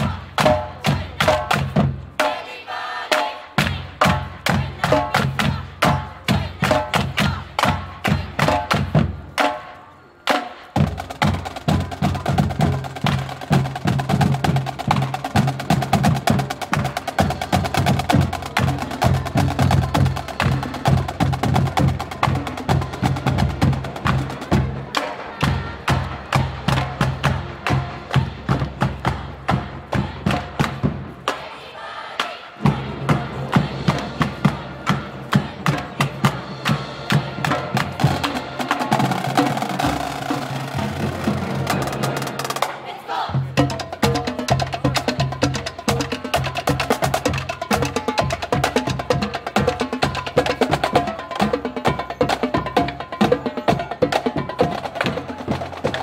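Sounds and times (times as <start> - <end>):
marching drumline cadence: 0.0 - 56.0.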